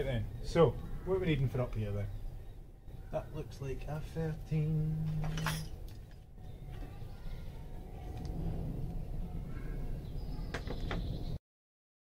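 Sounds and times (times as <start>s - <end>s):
low steady rumble: 0.0s - 11.4s
metal tools clinking: 5.1s - 6.3s.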